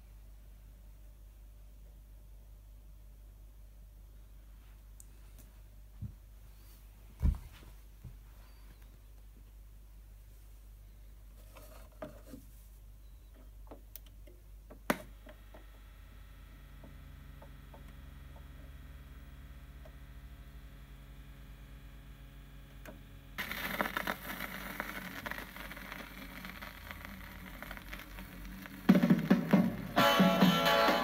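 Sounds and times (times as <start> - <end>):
faint hum with ticks: 13.0 - 29.0
vinyl record crackle and hiss: 14.8 - 31.0.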